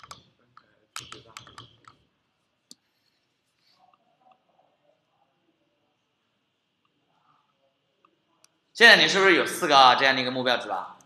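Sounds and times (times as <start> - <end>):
computer mouse clicks: 0.0 - 2.0.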